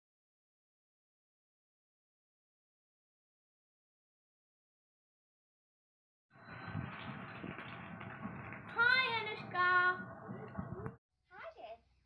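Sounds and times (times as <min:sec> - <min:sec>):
outdoor background noise: 0:06.4 - 0:12.0.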